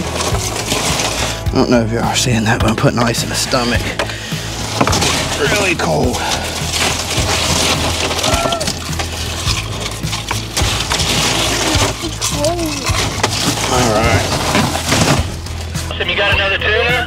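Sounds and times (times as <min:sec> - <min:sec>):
ice cubes clattering and crunching: 0:00.0 - 0:15.9.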